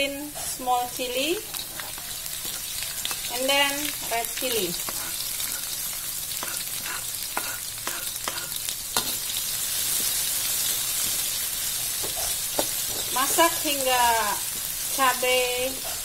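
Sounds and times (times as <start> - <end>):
vegetables sizzling in hot oil: 0.0 - 16.0
metal spatula tapping wok: 6.4 - 9.2, 12.0 - 13.4.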